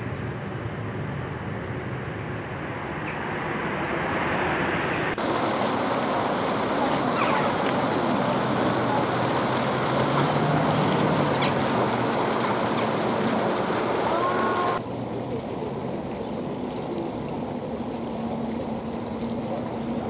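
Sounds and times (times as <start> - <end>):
fountain jets splashing: 5.2 - 20.0
gliding bird call: 6.9 - 7.8, 11.2 - 14.8.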